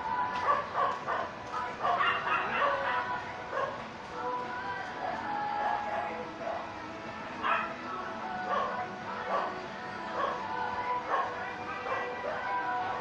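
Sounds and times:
dog barking: 0.4s - 3.8s, 7.4s - 7.7s, 8.5s - 9.5s, 10.2s - 10.4s, 11.1s - 12.2s.

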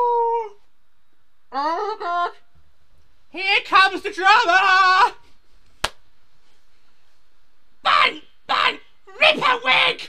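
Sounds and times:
finger snap: 5.8s - 6.0s.

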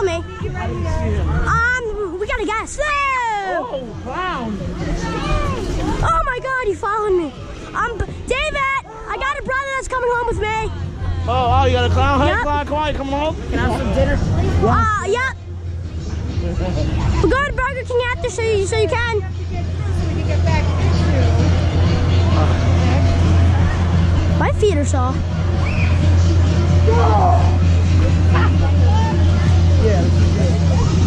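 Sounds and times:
steady low rumble: 9.6s - 31.0s.

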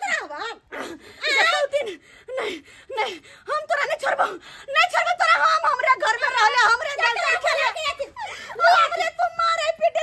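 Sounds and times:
woman talking: 2.9s - 10.0s.

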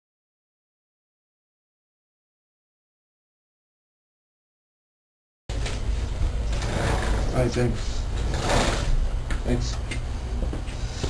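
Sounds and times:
microphone hiss: 5.5s - 11.0s.

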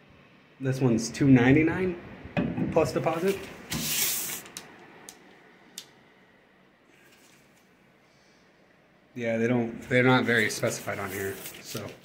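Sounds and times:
breathy rush of air: 7.9s - 8.9s.

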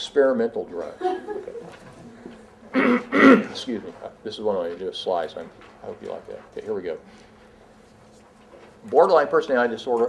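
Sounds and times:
faint buzzing hum: 0.0s - 10.0s
man speaking: 3.2s - 7.0s.

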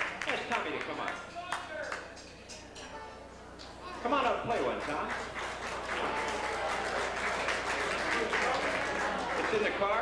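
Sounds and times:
scattered handclaps: 0.0s - 2.6s, 4.4s - 10.0s
indistinct voices in a hall: 1.2s - 10.0s.

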